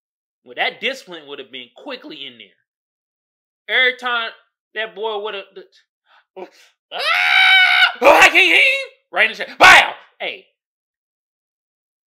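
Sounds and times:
boy screaming: 0:06.9 - 0:08.9.

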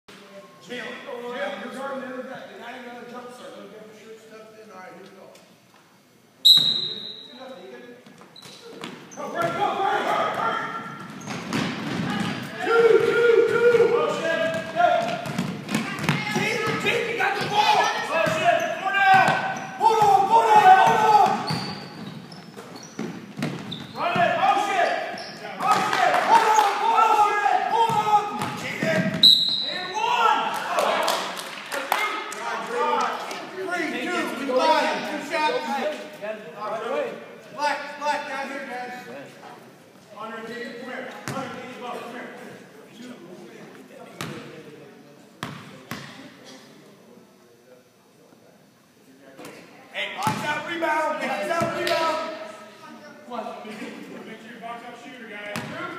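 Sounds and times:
people shouting and calling: 0:12.1 - 0:15.0, 0:15.8 - 0:21.5, 0:25.6 - 0:28.8.

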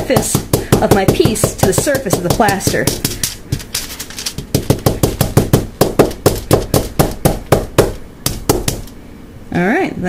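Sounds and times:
fingers tapping on table: 0:04.4 - 0:08.9.

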